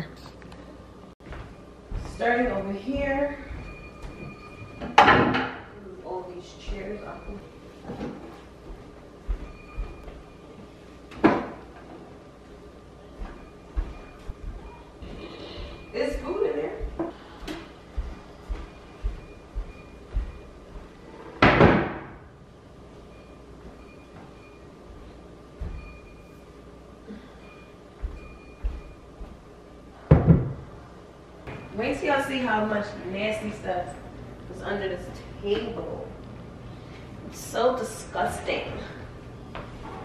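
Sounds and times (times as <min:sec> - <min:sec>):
footsteps: 0:01.2 - 0:04.9, 0:06.5 - 0:10.8, 0:12.4 - 0:21.2, 0:23.6 - 0:26.5, 0:27.9 - 0:29.6
chairs moved on hardwood floor: 0:07.8 - 0:10.1
chair scraping: 0:39.6 - 0:40.0.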